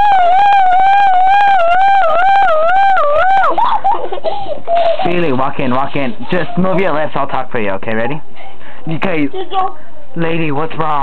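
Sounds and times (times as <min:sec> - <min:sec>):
child imitating police siren: 0:00.0 - 0:03.7.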